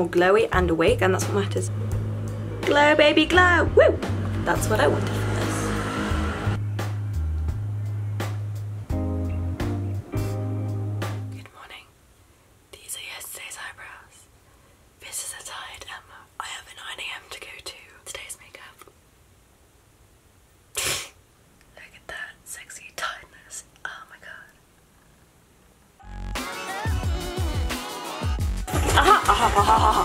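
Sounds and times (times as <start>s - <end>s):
background music: 0.0s - 11.5s, 26.0s - 30.0s
woman whispering: 11.3s - 12.0s, 12.7s - 14.3s, 15.0s - 18.9s, 21.7s - 24.7s.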